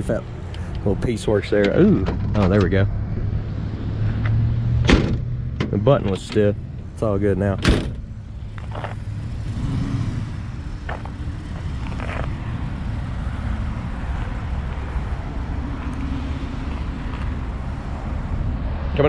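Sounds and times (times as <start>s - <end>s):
motor vehicle engine rumble: 0.0s - 19.0s.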